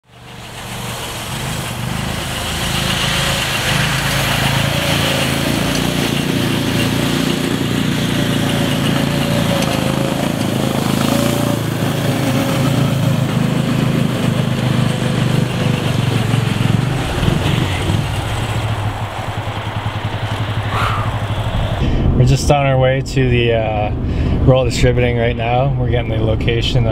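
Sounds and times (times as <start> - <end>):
snowmobile engine running: 0.1 - 22.3.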